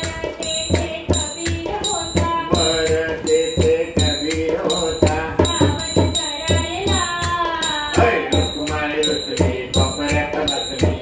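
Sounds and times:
hand drum beat: 0.0s - 11.0s
man and woman singing: 0.0s - 11.0s.

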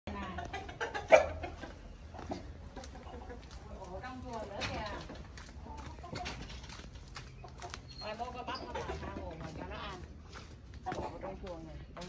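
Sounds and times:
chickens clucking: 0.1s - 12.0s.

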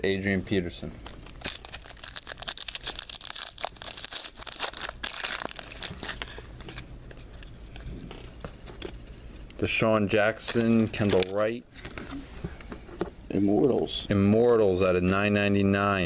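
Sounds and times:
foil wrapper tearing and crinkling: 1.3s - 6.3s.

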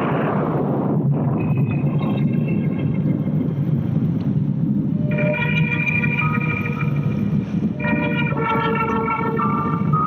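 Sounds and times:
low drone: 0.0s - 10.0s
faint high sustained tones: 4.9s - 10.0s.

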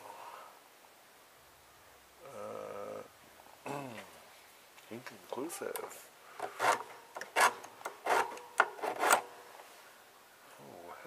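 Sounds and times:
metal part scraped: 6.4s - 9.3s.

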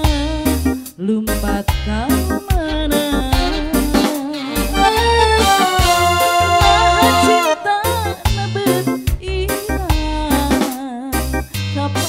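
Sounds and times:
woman singing into microphone: 0.0s - 5.0s, 6.4s - 12.0s
live band drums and bass: 0.0s - 12.0s.

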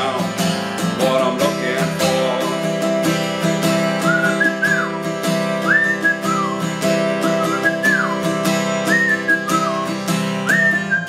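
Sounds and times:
acoustic guitar strumming: 0.0s - 11.0s
man whistling a melody: 1.9s - 2.8s, 3.7s - 11.0s.

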